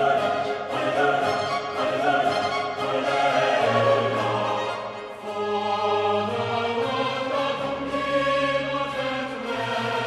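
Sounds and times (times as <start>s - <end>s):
instrumental accompaniment: 0.0s - 9.9s
choir holding sustained chords: 0.0s - 10.0s.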